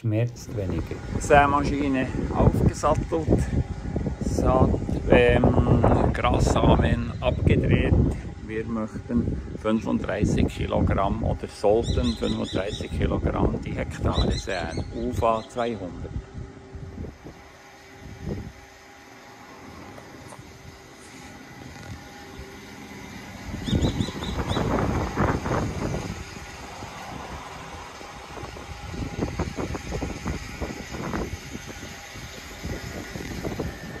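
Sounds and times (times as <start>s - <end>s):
wind buffeting microphone: 0.5s - 18.8s, 21.5s - 34.0s.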